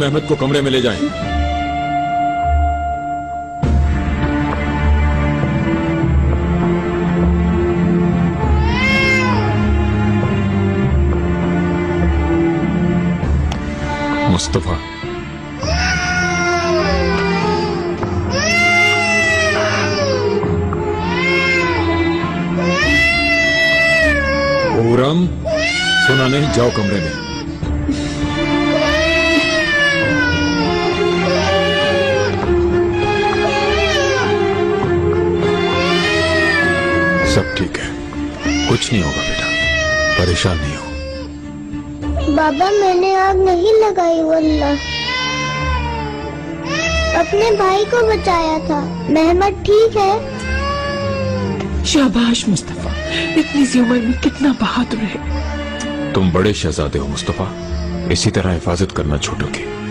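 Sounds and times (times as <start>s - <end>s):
tense background music: 0.0s - 59.9s
baby crying: 8.4s - 10.2s, 13.8s - 41.4s, 42.1s - 58.6s.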